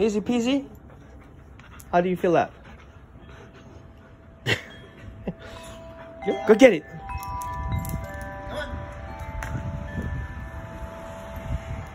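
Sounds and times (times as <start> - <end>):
wind chimes ringing: 4.4 - 11.9.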